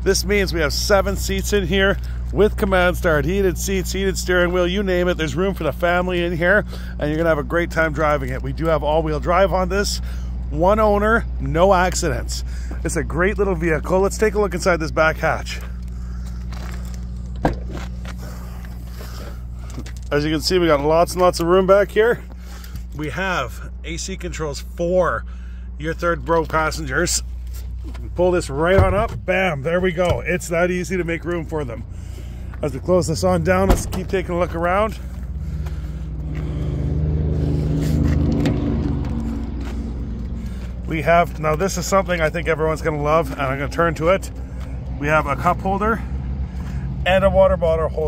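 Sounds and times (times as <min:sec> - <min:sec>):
steady low hum: 0:00.0 - 0:45.0
vehicle driving past: 0:34.9 - 0:40.9.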